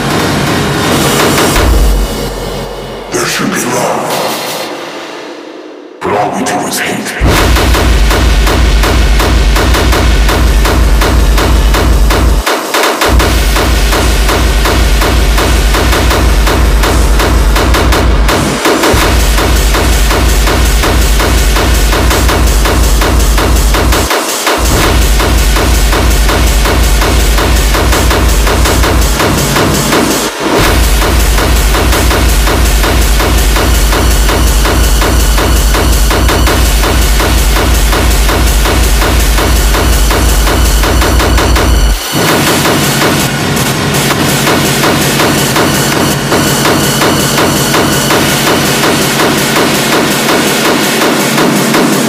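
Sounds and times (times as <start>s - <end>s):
hard techno music: 0.0s - 52.0s.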